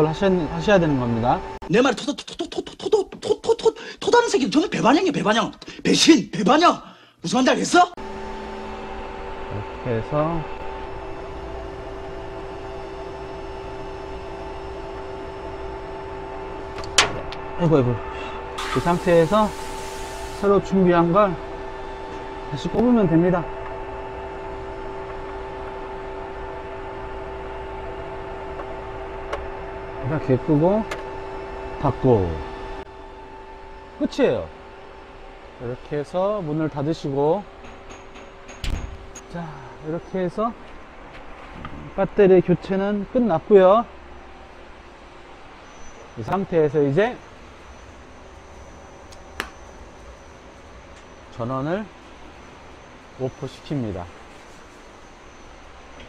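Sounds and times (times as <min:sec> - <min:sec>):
cooling fan noise: 0:00.0 - 0:02.2, 0:08.0 - 0:56.0
electrical cabinet hum and hiss: 0:00.0 - 0:56.0
higher constant tone: 0:08.0 - 0:37.6
faint high whine: 0:41.7 - 0:56.0
sharp click: 0:49.1 - 0:49.6.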